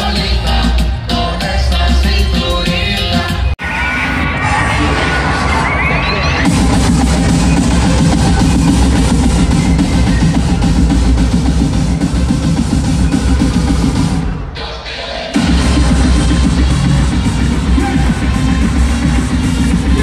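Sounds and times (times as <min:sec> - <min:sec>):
loud live concert music: 0:00.0 - 0:20.0.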